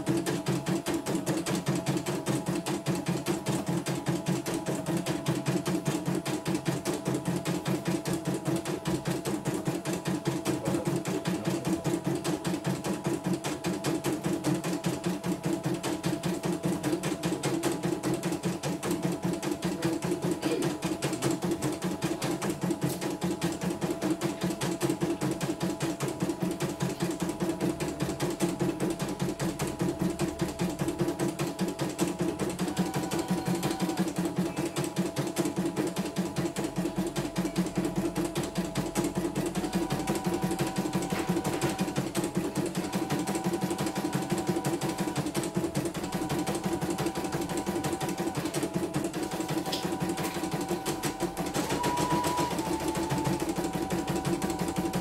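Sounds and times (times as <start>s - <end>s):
embroidery machine stitching: 0.0s - 55.0s.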